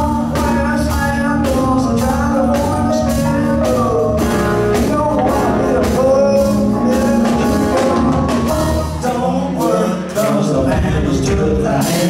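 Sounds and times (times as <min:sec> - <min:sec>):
electric guitar: 0:00.0 - 0:12.0
steady drum beat: 0:00.0 - 0:12.0.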